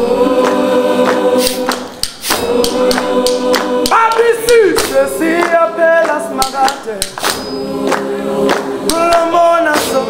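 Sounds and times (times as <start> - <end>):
choir singing a cappella: 0.0 - 10.0
sharp hand claps: 0.4 - 10.0.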